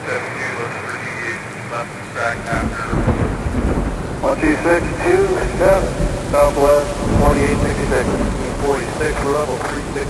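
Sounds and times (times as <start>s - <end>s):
rolling thunder rumble: 0.0s - 10.0s
steady rain: 0.0s - 10.0s.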